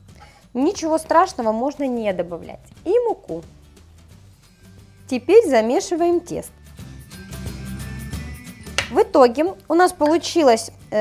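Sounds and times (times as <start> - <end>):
background music with bass: 2.2 - 10.4.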